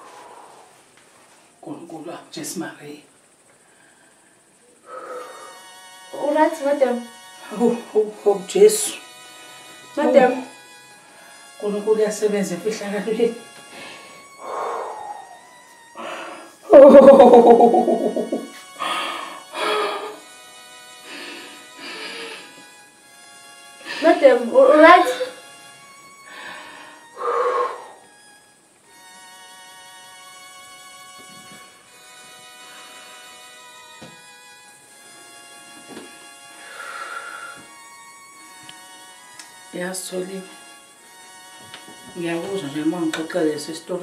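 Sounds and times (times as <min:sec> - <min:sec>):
soft string-like background music: 0:05.2 - 0:44.0
spoken dialogue: 0:10.0 - 0:10.5, 0:24.0 - 0:25.4, 0:42.1 - 0:44.0.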